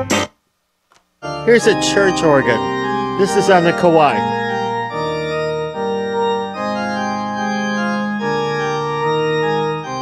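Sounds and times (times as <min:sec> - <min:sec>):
sustained organ chords: 0:01.2 - 0:10.0.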